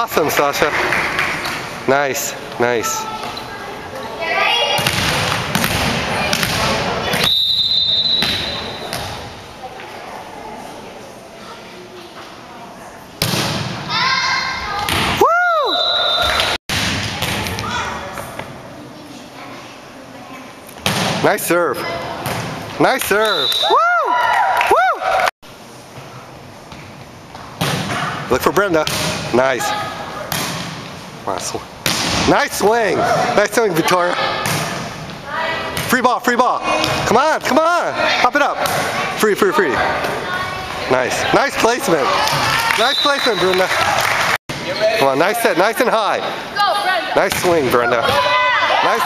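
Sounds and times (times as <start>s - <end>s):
spectators' voices: 0.0s - 15.3s, 32.3s - 49.0s
gymnasium murmur: 0.0s - 49.0s
thuds echoing in a gym: 4.7s - 7.2s, 16.7s - 18.2s
referee's whistle: 7.2s - 8.9s, 15.7s - 16.6s, 23.2s - 23.8s, 42.8s - 43.6s.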